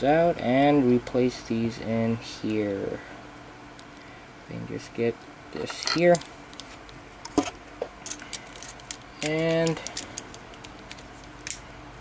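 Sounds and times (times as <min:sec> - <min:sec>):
plastic parts clicking and rattling: 0:07.3 - 0:11.6.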